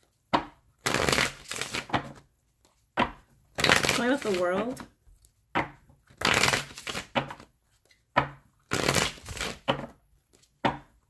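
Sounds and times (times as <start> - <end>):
cards being shuffled: 0.8 - 2.9, 3.6 - 5.4, 6.1 - 8.1, 8.7 - 10.6.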